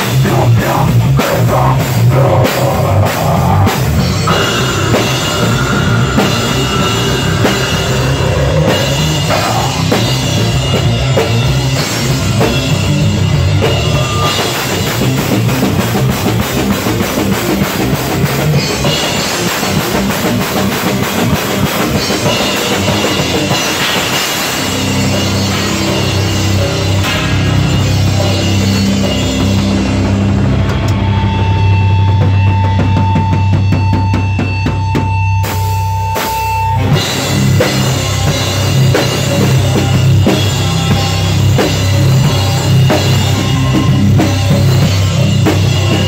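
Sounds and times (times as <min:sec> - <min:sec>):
distorted electric guitar: 0:00.0 - 0:46.0
drum kit with cymbals: 0:00.0 - 0:46.0
live rock band playing: 0:00.0 - 0:46.0.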